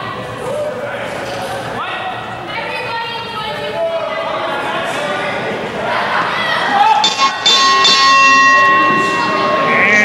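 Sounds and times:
ring bell struck: 0:07.0 - 0:10.0.

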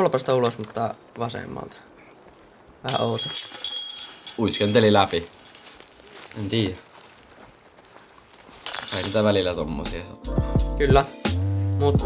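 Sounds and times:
person speaking: 0:02.8 - 0:06.9, 0:08.7 - 0:11.2
faint steady high tone: 0:03.0 - 0:09.8.

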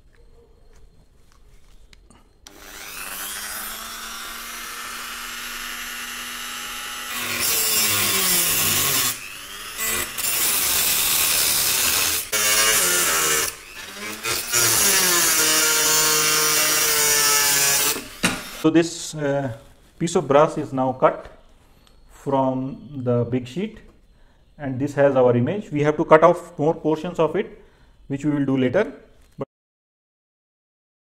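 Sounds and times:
grinding disc on metal: 0:02.5 - 0:18.6
rotary tool cutting metal sheet: 0:02.5 - 0:18.6.

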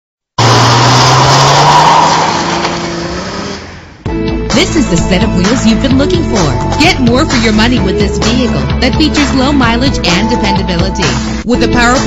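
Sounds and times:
car engine at high revs: 0:00.4 - 0:04.0.

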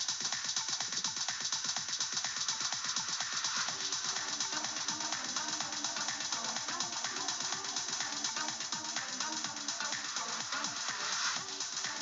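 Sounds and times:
house music track: 0:00.0 - 0:12.0.

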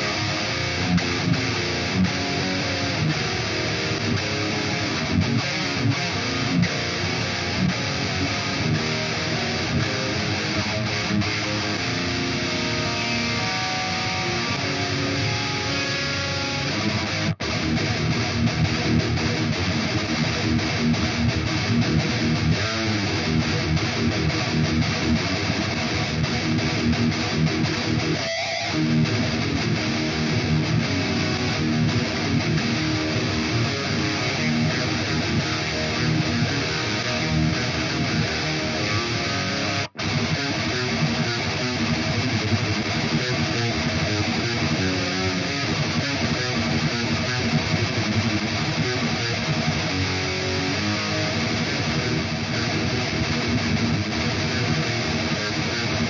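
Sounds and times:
distorted electric guitar riffing: 0:00.0 - 0:56.0.

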